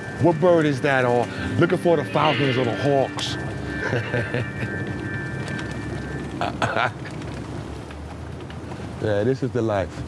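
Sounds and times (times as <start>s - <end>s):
low rumble: 0.0s - 8.0s.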